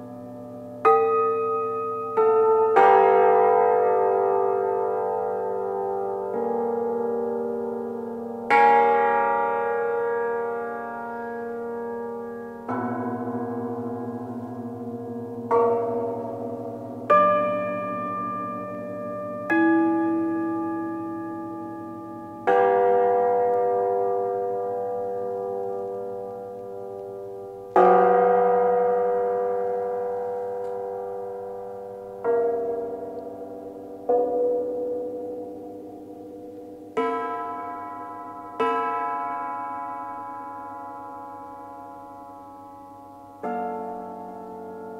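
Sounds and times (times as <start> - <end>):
cimbalom chords ringing: 0.0 - 44.9.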